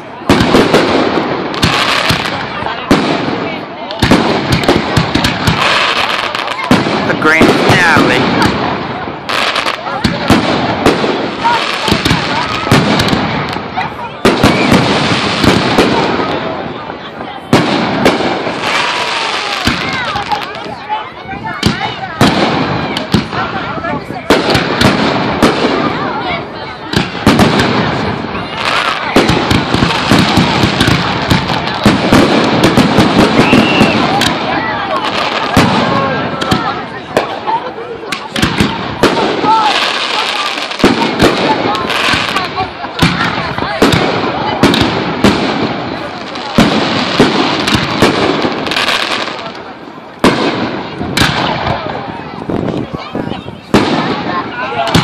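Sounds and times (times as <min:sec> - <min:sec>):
fireworks bangs and crackles: 0:00.0 - 0:55.0.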